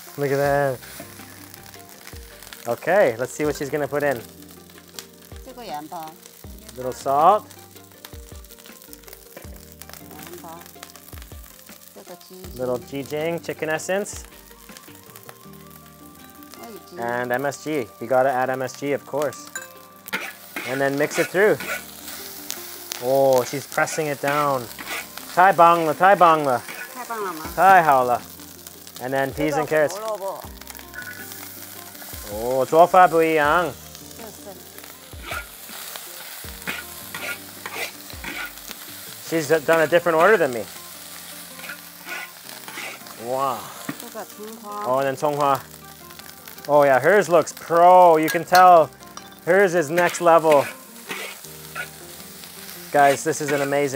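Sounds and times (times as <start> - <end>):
rice sizzling in a wok: 0.0 - 53.9
soft background music: 0.0 - 53.9.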